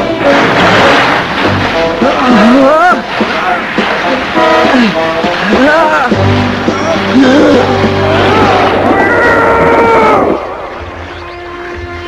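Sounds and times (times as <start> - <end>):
cartoon sea water splashing: 0.0 - 9.0.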